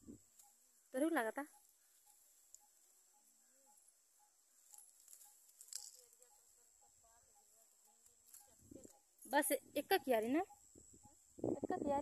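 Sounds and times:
soft crackles: 0:04.5 - 0:06.7.

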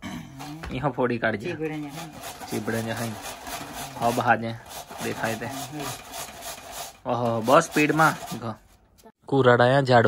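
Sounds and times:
vegetable grating on metal grater: 0:01.4 - 0:08.8.

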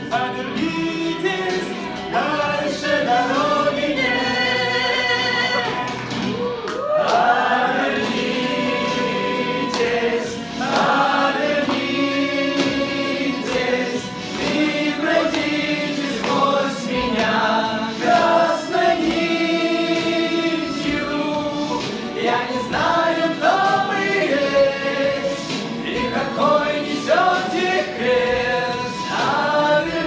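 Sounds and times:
men singing together: 0:00.0 - 0:06.0, 0:07.0 - 0:30.0
drum kit playing: 0:07.2 - 0:30.0.

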